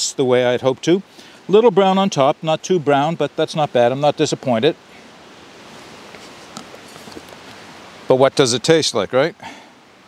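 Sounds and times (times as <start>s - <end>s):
outdoor background hiss: 0.0s - 10.0s
rustles: 4.8s - 8.2s.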